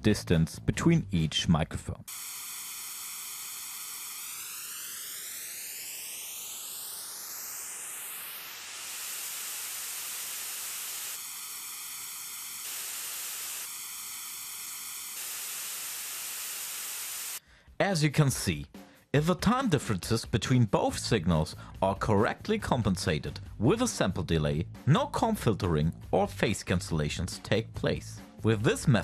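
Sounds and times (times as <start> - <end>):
hollow comb-filtered hiss: 2.1 - 17.4.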